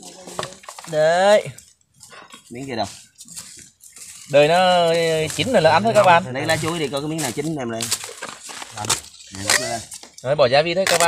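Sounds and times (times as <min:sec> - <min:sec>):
rustling: 0:00.0 - 0:11.0.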